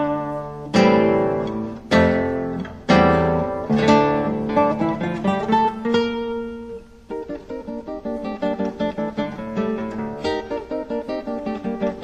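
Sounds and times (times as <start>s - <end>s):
classical guitar chords: 0.0s - 12.0s.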